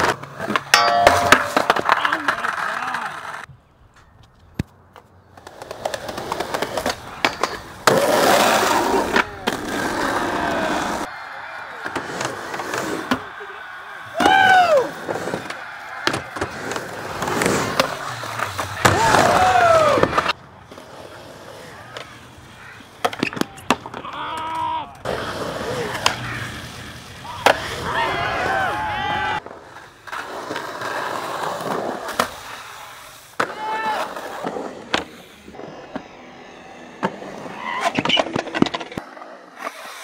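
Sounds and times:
skateboard clacks: 0:00.0 - 0:03.5, 0:04.9 - 0:20.9, 0:21.5 - 0:28.5
skateboard wheels rolling: 0:00.0 - 0:03.5, 0:04.6 - 0:40.0
voices calling out: 0:00.7 - 0:03.5, 0:06.6 - 0:20.3, 0:21.3 - 0:29.4.

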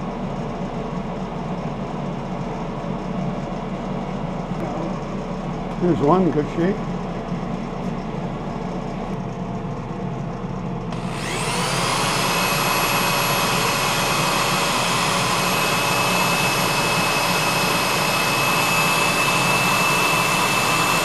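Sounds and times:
power drill sanding whine: 0:10.9 - 0:21.0.

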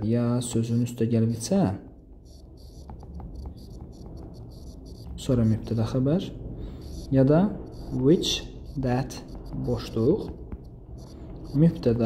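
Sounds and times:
stylus scratching on tablet screen: 0:00.1 - 0:12.0
stylus tapping: 0:01.9 - 0:12.0.

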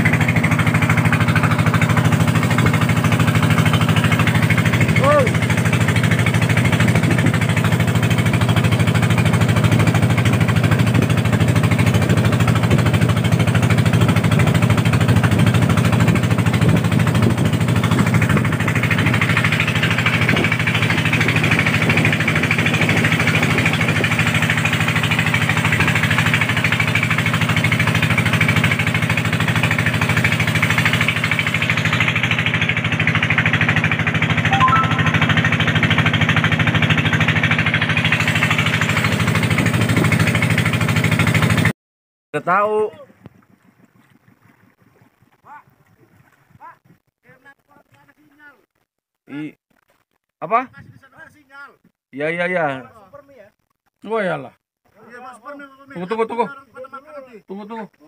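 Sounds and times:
boat engine running: 0:00.0 - 0:41.7.

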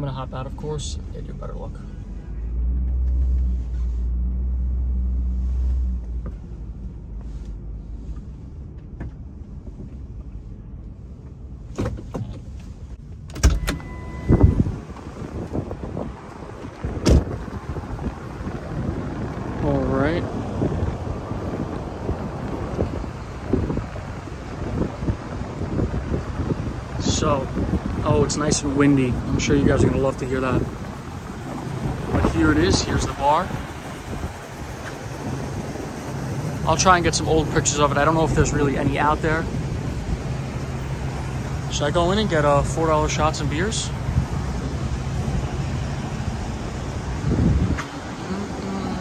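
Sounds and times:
city street traffic: 0:00.0 - 0:49.0
wind buffeting microphone: 0:14.0 - 0:49.0.

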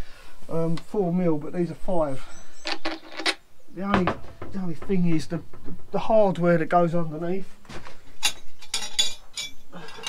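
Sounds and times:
metal parts clinking: 0:02.6 - 0:03.4, 0:08.2 - 0:10.0.

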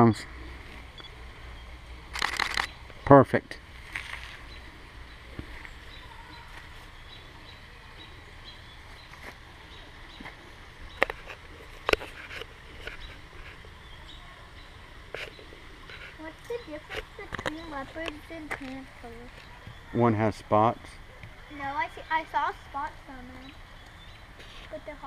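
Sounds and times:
camera shutter clicks burst: 0:02.1 - 0:02.8.

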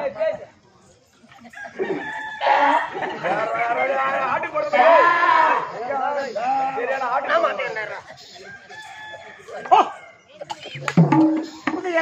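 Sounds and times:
rooster crowing: 0:01.6 - 0:03.0.

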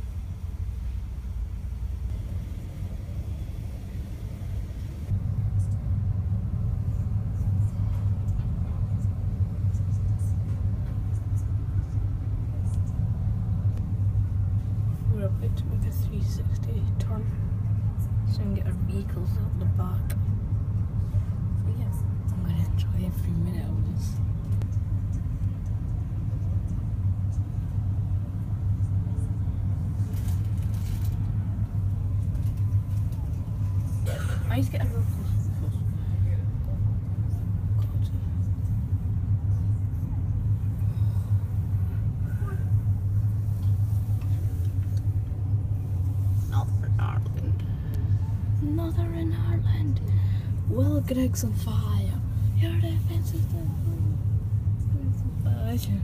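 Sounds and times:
ferry engine rumble: 0:00.0 - 0:56.0
faint distant voices: 0:21.0 - 0:56.0.

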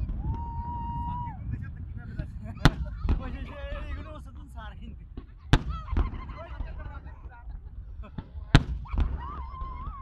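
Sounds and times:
fireworks bangs: 0:00.0 - 0:07.2, 0:08.1 - 0:10.0.

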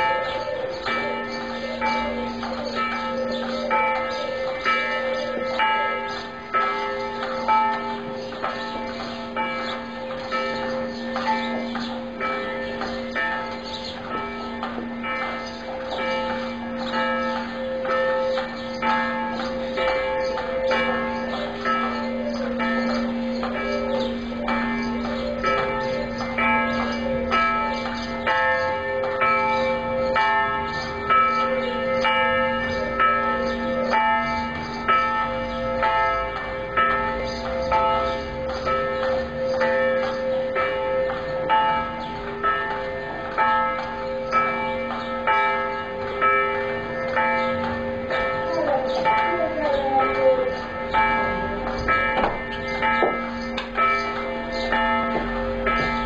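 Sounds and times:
church bells ringing: 0:00.0 - 0:56.0.

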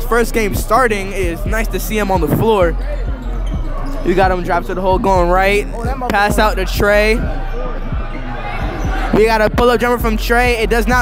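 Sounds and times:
gym background noise: 0:00.0 - 0:10.4
basketball bouncing on hardwood floor: 0:02.2 - 0:02.7.

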